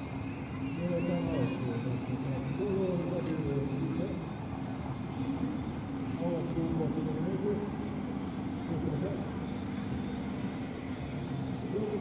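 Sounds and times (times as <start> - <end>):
boat engine droning: 0.0 - 12.0
people talking: 0.8 - 4.4, 6.1 - 7.8, 8.6 - 9.5, 11.6 - 12.0.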